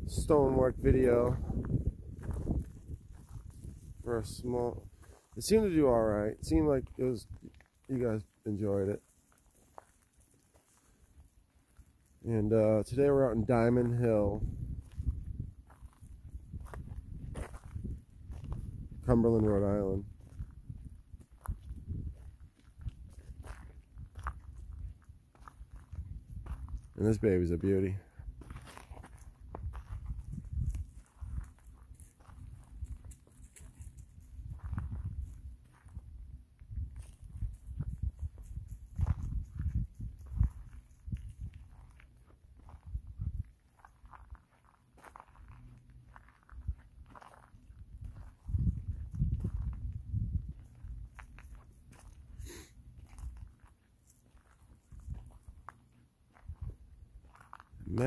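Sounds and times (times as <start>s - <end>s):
footsteps crunching dry leaves: 6.6s - 12.3s.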